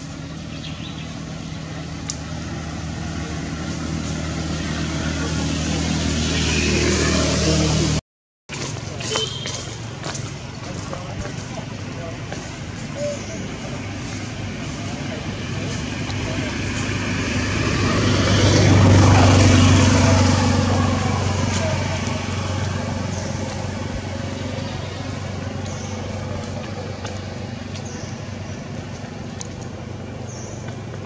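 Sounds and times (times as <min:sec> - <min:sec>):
vehicle engine passing by: 0:00.0 - 0:31.0.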